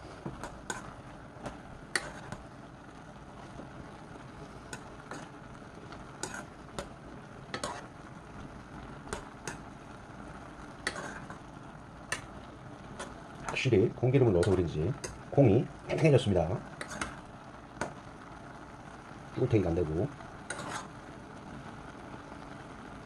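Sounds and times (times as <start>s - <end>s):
faint simmering: 0.0s - 23.0s.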